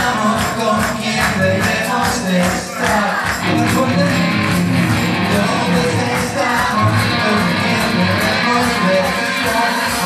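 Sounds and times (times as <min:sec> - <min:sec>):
live rock band playing: 0:00.0 - 0:10.0
strummed electric guitars: 0:00.0 - 0:10.0.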